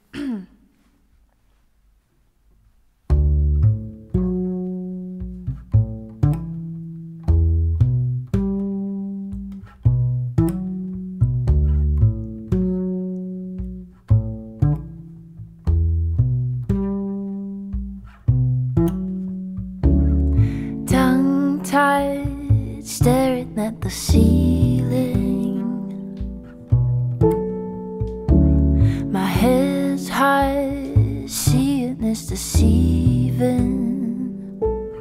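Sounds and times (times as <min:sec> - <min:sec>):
plucked acoustic bass guitar: 0:03.0 - 0:35.0
woman singing: 0:20.7 - 0:26.1, 0:28.9 - 0:34.5.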